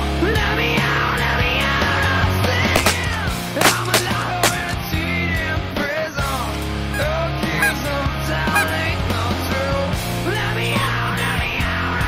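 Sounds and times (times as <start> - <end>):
rock music: 0.0 - 12.0
geese honking: 7.0 - 9.0.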